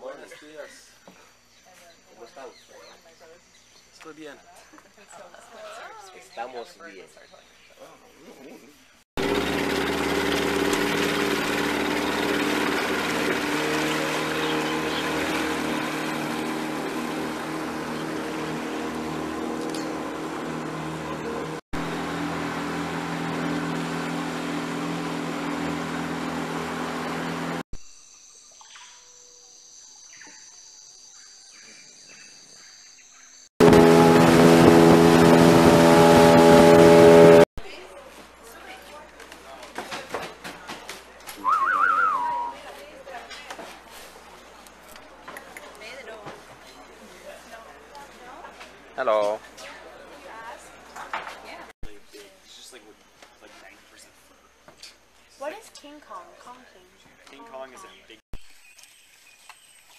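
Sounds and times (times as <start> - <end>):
motorboat engine droning: 9.2 - 27.6, 33.6 - 37.5, 41.4 - 42.6.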